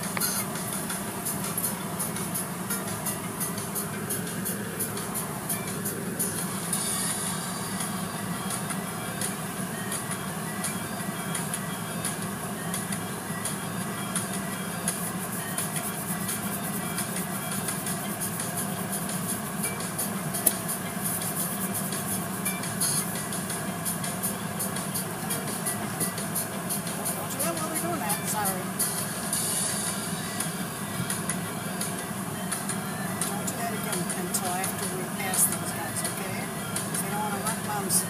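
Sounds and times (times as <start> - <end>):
car wash spray and machinery: 0.0 - 38.0.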